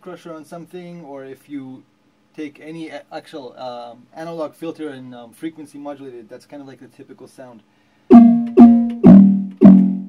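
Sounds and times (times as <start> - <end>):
synthesized kick drum hits: 8.1 - 10.0.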